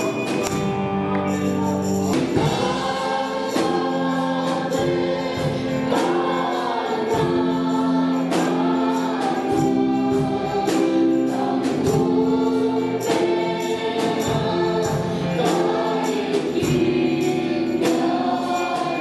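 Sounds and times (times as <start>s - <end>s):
live band accompaniment: 0.0s - 19.0s
steady percussion beat: 0.0s - 19.0s
female voices singing a hymn: 1.7s - 19.0s.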